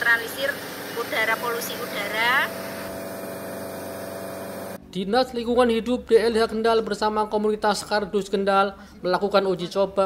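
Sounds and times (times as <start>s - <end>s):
water cannon spraying: 0.0s - 4.8s.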